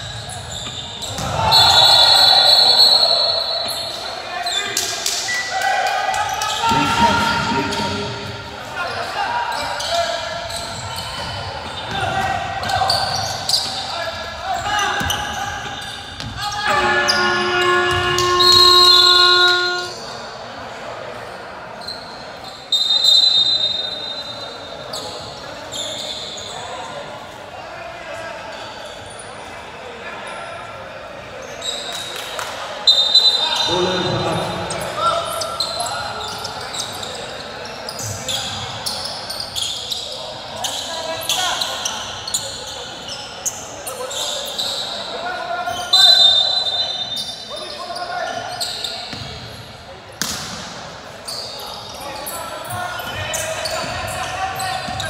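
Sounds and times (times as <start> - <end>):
voices: 0.1 - 20.2
game buzzer horn: 16.7 - 20.0
short high-pitched tones: 16.7 - 20.0.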